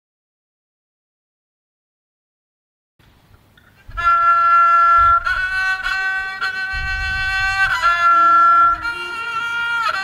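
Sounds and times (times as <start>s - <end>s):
faint room noise: 3.0s - 10.0s
bamboo flute long note: 3.9s - 10.0s.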